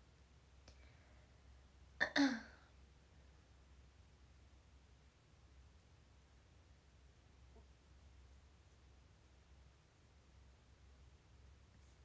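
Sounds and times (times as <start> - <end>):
woman coughing: 2.0 - 2.6.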